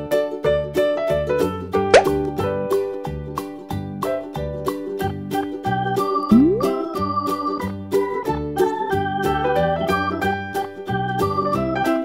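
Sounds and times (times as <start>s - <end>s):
upbeat children's music: 0.4s - 12.0s
rising plop sound effect: 1.9s - 2.3s, 6.3s - 7.0s.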